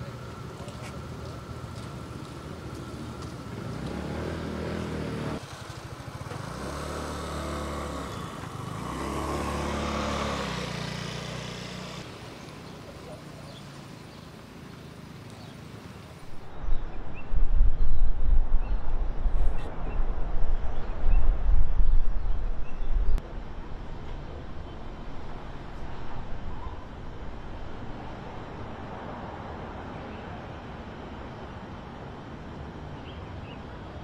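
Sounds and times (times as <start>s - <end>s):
motor vehicles passing: 0.0s - 16.6s.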